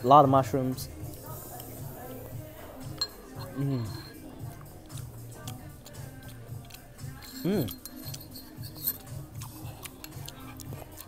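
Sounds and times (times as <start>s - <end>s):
music with repeating bass line: 0.8s - 11.0s
spoon clinking against dish: 2.6s - 11.0s.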